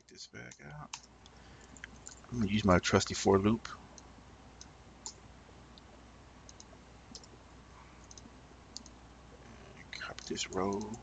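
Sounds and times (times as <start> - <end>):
mouse clicks: 6.5 - 7.3, 8.0 - 9.0, 10.1 - 11.0
computer keys clicking: 6.5 - 7.4, 8.0 - 9.0, 10.0 - 11.0.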